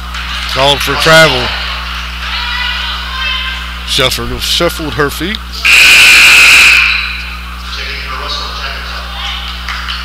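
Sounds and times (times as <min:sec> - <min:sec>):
referee's whistle blast: 0:05.6 - 0:07.4.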